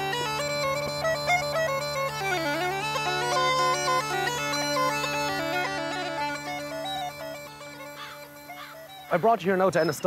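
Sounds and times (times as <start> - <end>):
bagpipe tune over drones: 0.0 - 10.0.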